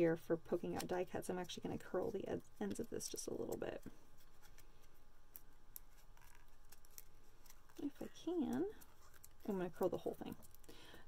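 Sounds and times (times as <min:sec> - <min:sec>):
paper ticks and rustles: 0:02.6 - 0:10.7.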